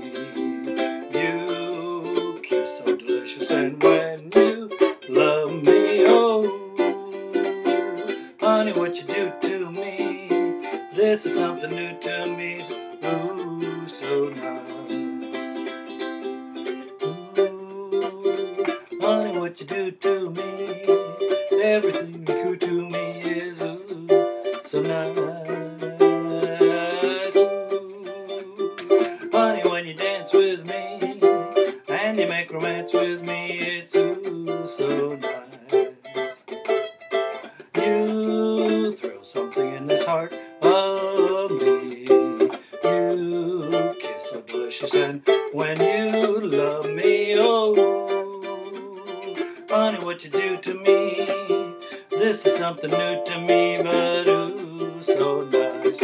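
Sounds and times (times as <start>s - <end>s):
ukulele strumming chords: 0.0s - 56.0s.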